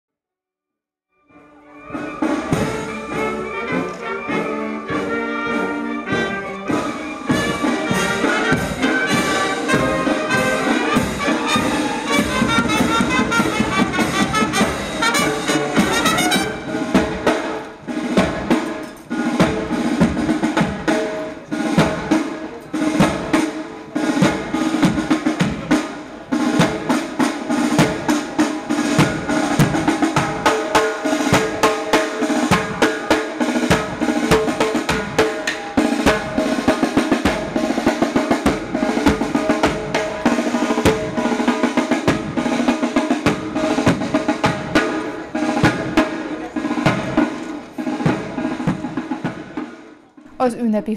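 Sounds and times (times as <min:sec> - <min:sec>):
held brass notes: 0:01.2 - 0:49.7
snare and bass drums marching: 0:01.9 - 0:49.9.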